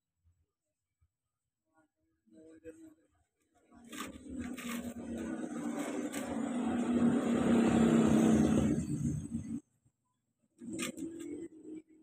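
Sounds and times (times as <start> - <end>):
vehicle engine running: 4.1 - 9.6.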